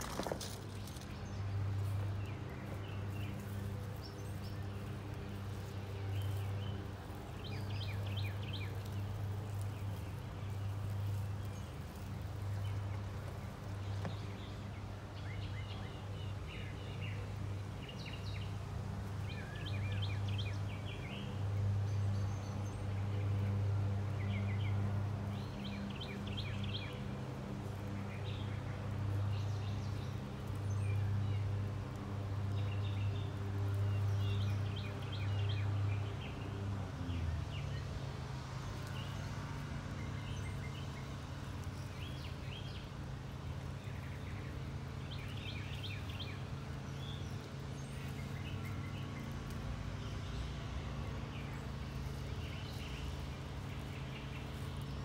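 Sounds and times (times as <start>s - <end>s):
birds chirping in trilled bursts: 0.0s - 55.0s.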